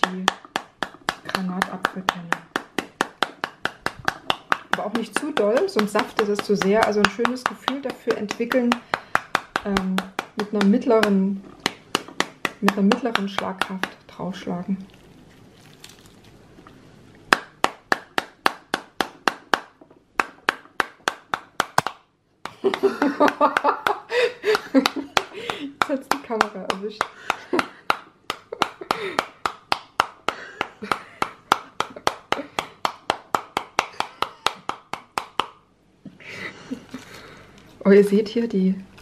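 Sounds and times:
spoon beating pomegranate skin: 0:00.0 - 0:16.3, 0:17.3 - 0:24.0, 0:24.6 - 0:35.5
seeds falling onto plate: 0:14.8 - 0:16.8.

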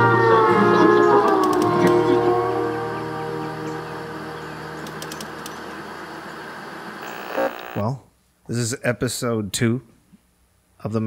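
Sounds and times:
static hiss with crackles: 0:04.8 - 0:07.9.

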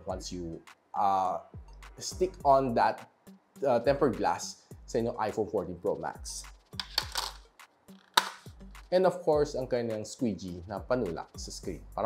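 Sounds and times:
faint background music: 0:00.0 - 0:12.0
sharp crack: 0:08.0 - 0:08.5.

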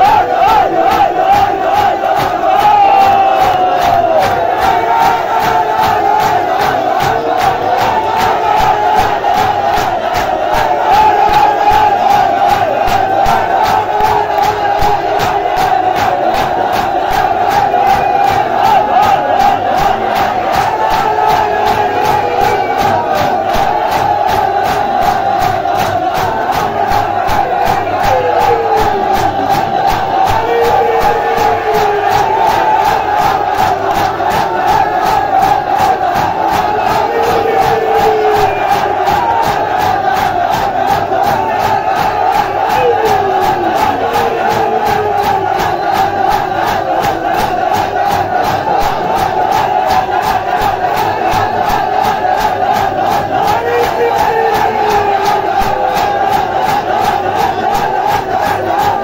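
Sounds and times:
crowd of men chanting: 0:00.0 - 0:59.0
hands slapping bare chests: 0:00.0 - 0:59.0.

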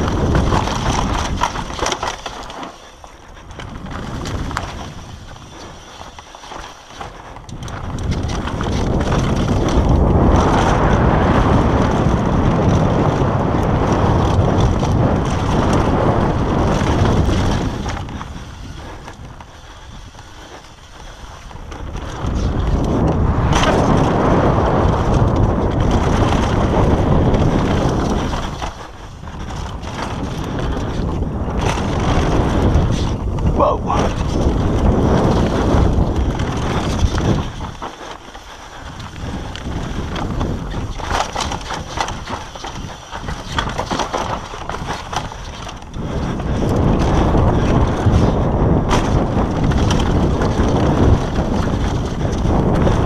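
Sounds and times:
bike clicks and rattles: 0:00.0 - 0:53.0
bike tyres rolling on dirt: 0:00.0 - 0:53.0
wind rushing over microphone: 0:00.0 - 0:53.0.

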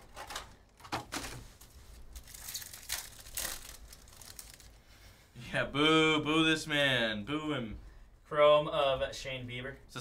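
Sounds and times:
wrapper crinkling and tearing: 0:00.0 - 0:04.8.

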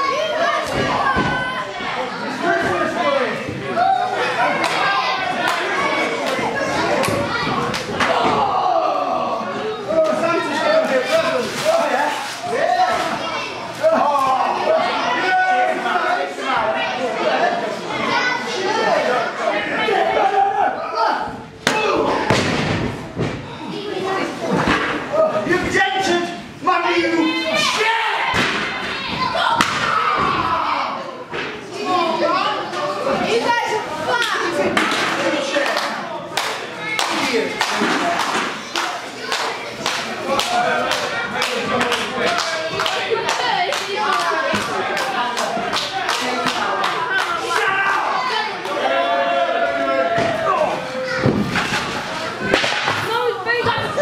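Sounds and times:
children's voices: 0:00.0 - 0:54.0
voices shouting: 0:36.9 - 0:54.0.

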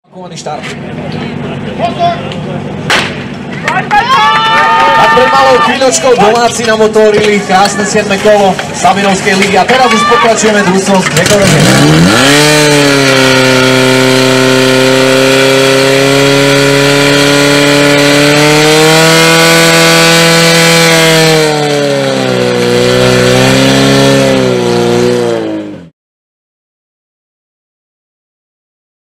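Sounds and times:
pump engine running at high revs: 0:10.4 - 0:25.9.

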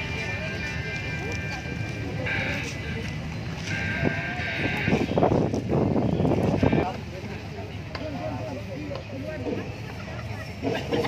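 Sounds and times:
outdoor crowd ambience: 0:00.0 - 0:11.0
voices talking: 0:00.0 - 0:11.0.

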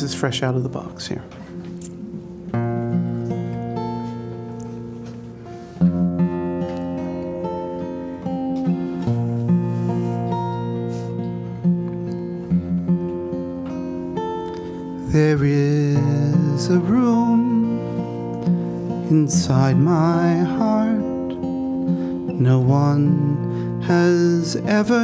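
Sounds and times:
acoustic guitar chords and notes: 0:00.0 - 0:25.0.

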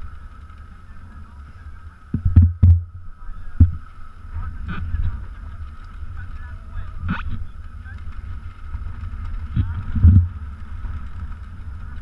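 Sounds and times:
dirt bikes rumbling: 0:00.0 - 0:12.0.

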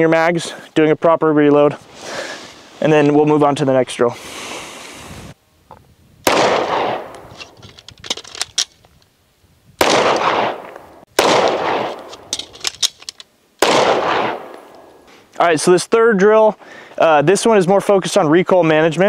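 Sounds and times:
handgun shots echoing: 0:06.3 - 0:07.2, 0:09.8 - 0:12.5, 0:13.6 - 0:14.8.

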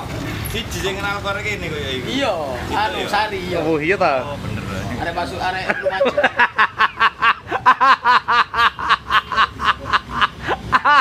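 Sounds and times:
man laughing: 0:05.6 - 0:11.0.

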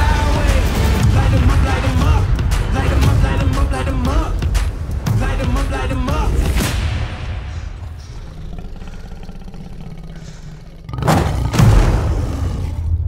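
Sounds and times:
heavy booming hits: 0:11.0 - 0:13.0.

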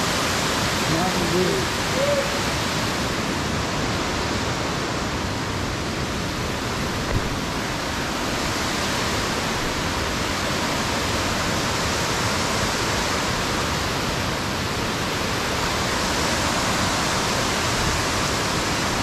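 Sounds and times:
water rushing over rocks: 0:00.0 - 0:19.0.

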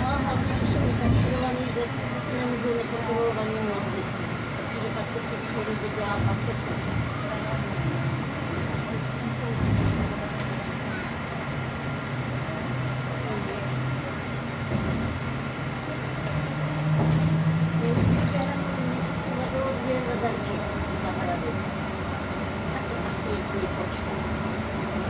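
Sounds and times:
trolleybus electric drive humming: 0:00.0 - 0:25.0.

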